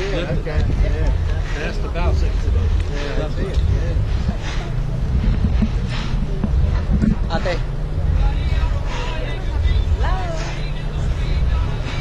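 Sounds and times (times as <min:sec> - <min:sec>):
wind buffeting microphone: 0:00.0 - 0:08.9
people talking: 0:00.0 - 0:12.0.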